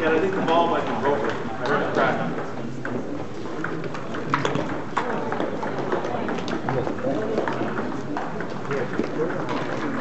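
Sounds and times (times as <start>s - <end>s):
murmur of voices: 0.0s - 10.0s
ping-pong balls clicking: 1.1s - 10.0s.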